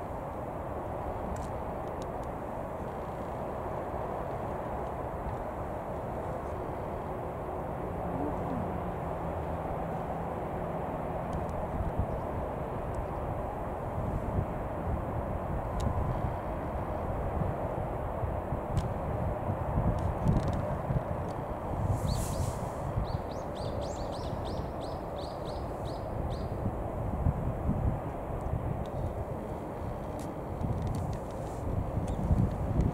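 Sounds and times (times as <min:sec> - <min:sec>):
low outdoor rumble: 0:00.0 - 0:32.9
small bird chirping: 0:23.0 - 0:26.5.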